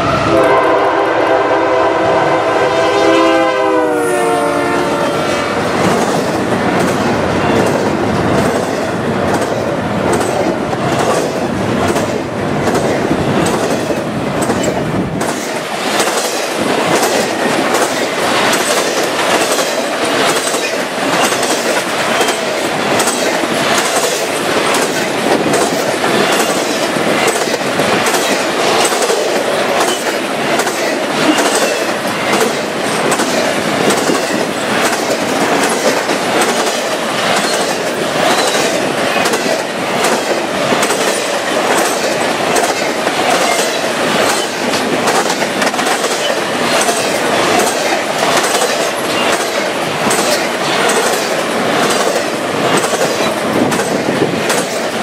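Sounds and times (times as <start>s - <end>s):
steel wheels rushing on rail: 0.0s - 55.0s
wheels clicking over rail joints: 5.8s - 55.0s.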